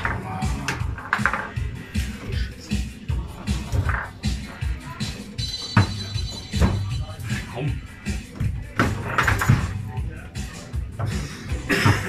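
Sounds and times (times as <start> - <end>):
background music: 0.0 - 12.0
voices: 0.0 - 12.0.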